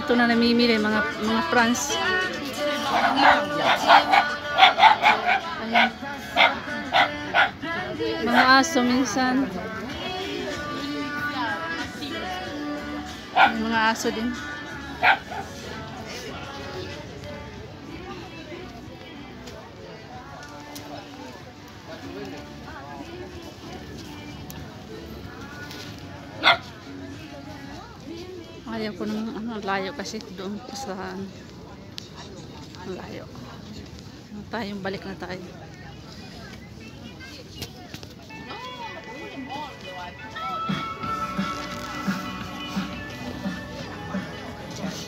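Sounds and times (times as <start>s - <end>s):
background music: 0.0s - 31.0s, 38.3s - 45.0s
background chatter of voices: 0.0s - 45.0s
dog barking: 2.8s - 7.6s, 13.3s - 13.6s, 15.0s - 15.6s, 26.4s - 26.7s.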